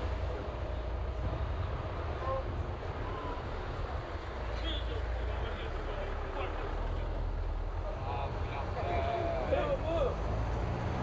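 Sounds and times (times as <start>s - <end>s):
faint voices: 2.0s - 10.2s.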